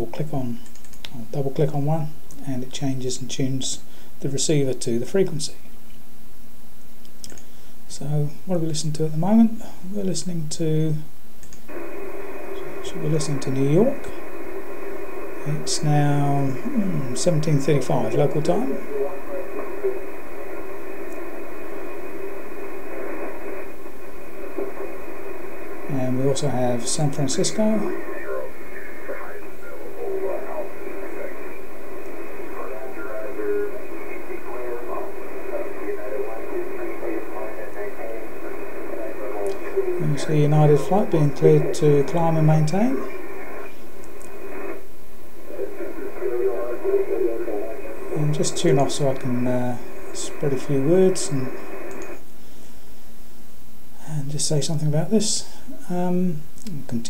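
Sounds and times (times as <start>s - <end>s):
radio static hiss: 0.0s - 57.0s
faint voice over radio: 15.2s - 23.7s, 25.6s - 43.8s, 45.4s - 51.9s.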